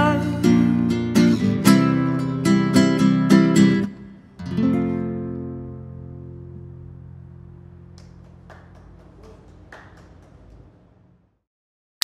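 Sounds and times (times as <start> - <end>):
nylon-string guitar notes: 0.0 - 7.9
low steady room rumble: 4.0 - 11.4.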